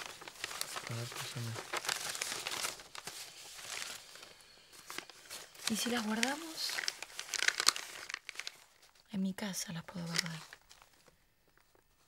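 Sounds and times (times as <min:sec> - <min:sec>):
paper rustling and crinkling: 0:00.0 - 0:09.1, 0:09.9 - 0:12.0.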